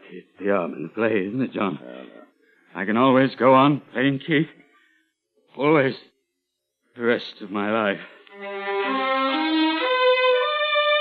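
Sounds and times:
dramatic bowed strings music: 8.3s - 11.0s.

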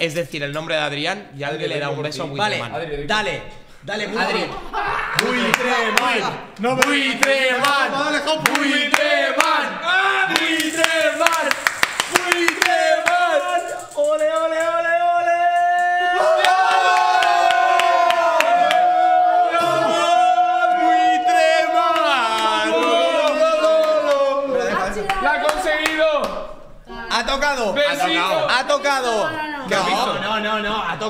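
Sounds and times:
excited voices: 3.9s - 31.0s
group shouting and cheering: 4.0s - 30.4s.

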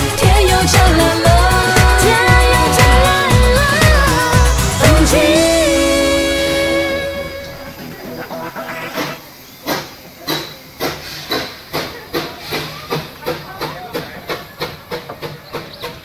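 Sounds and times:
steam locomotive exhaust chuffs: 0.0s - 16.0s
steam hiss: 3.7s - 16.0s.

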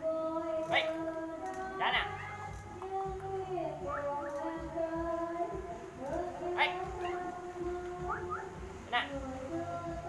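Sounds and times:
person singing: 0.0s - 10.0s
eagle calling: 0.6s - 1.1s, 1.7s - 2.5s, 6.3s - 9.2s.

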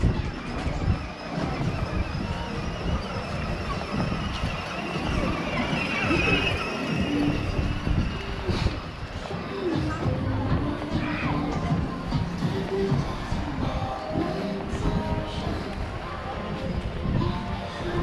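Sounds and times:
low crowd rumble: 0.0s - 18.0s
voices of passers-by: 0.0s - 18.0s.

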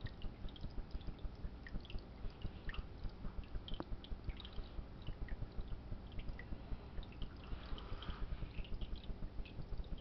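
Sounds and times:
water dripping and trickling: 0.0s - 10.0s.

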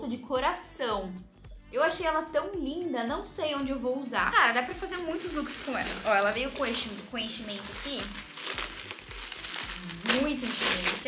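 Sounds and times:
crumpled paper crinkling: 4.4s - 11.0s.

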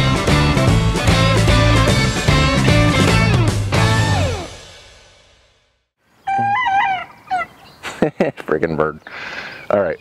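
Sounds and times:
rock music with guitar: 0.0s - 4.9s.

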